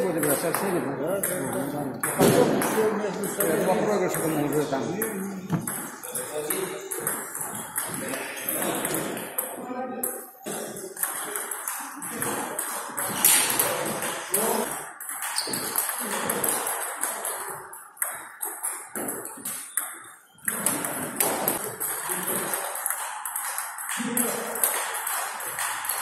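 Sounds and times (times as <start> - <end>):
ball clicking off paddles: 0.1 - 9.4, 10.5 - 26.0
ball bouncing on table: 0.1 - 9.5.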